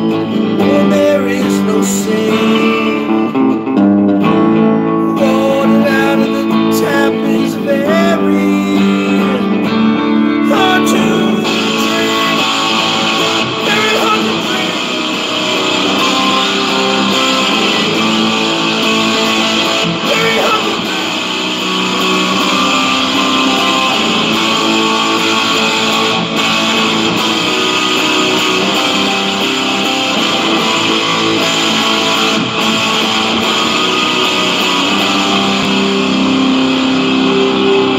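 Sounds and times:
electric guitar playing: 0.0 - 37.9.

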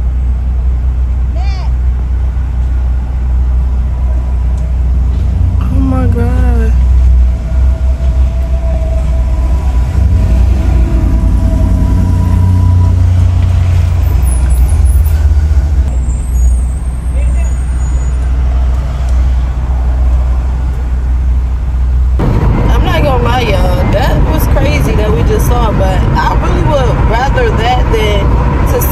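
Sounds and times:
vehicle low rumble: 0.0 - 28.9
person speaking: 5.6 - 6.8.

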